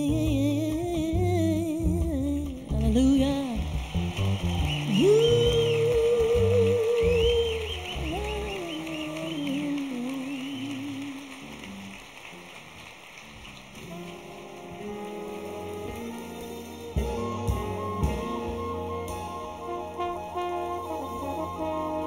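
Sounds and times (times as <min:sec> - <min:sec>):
band and orchestra music: 0:00.0 - 0:22.0.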